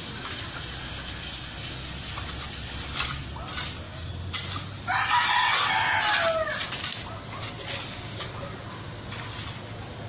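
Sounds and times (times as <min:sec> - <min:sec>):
rooster crowing: 0:04.9 - 0:06.7.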